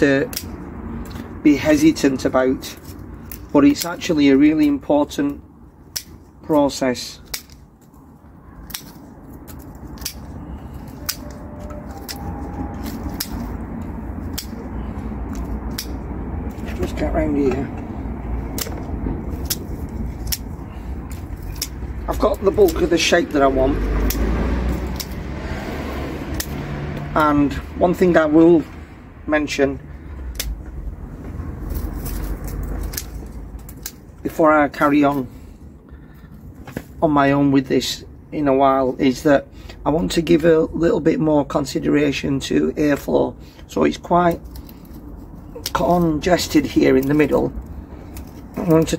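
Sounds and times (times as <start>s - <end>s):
twigs rustling: 0.0s - 37.0s, 43.8s - 48.9s
low steady rumble: 0.0s - 41.1s
secateurs snipping woody stems: 0.2s - 2.0s, 2.6s - 4.8s, 5.8s - 8.0s, 8.6s - 28.2s, 30.2s - 30.8s, 31.6s - 35.0s, 44.2s - 48.9s.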